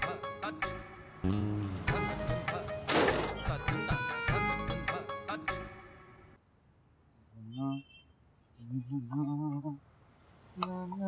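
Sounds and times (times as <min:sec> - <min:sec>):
crickets chirping: 0:05.4 - 0:11.0.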